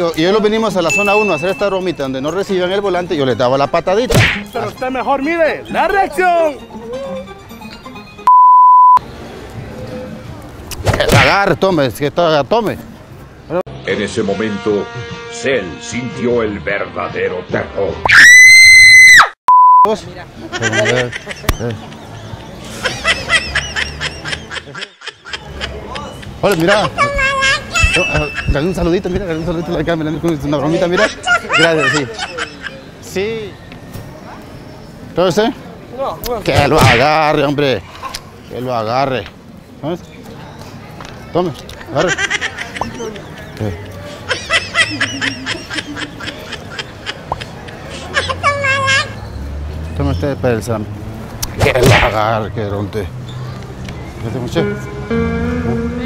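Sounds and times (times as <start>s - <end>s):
short steady beep tone: 8.2s - 9.0s, 19.5s - 19.9s
shrill high-pitched scream: 18.1s - 19.4s
high-pitched snickering laughter: 20.6s - 28.6s, 42.0s - 49.2s.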